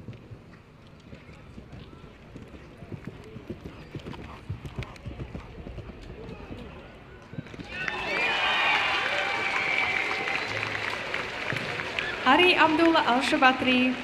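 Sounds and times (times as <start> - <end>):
horse hooves cantering on grass: 0.0 - 7.8
applause: 7.6 - 14.0.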